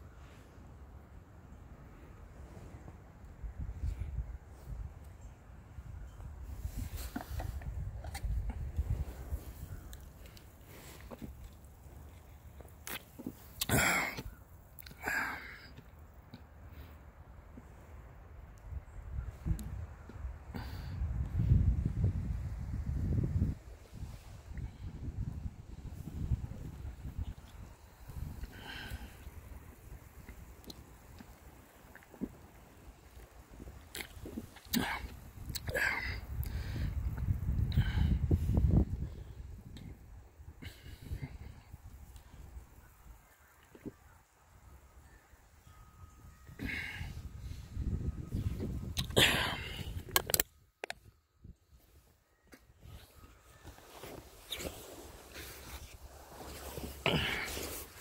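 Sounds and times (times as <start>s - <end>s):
quiet rustling: 6.5s - 13.6s, 51.7s - 58.0s.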